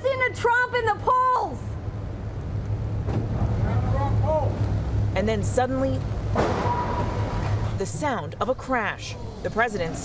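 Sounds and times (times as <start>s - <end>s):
car crash impact: 6.3s - 7.7s.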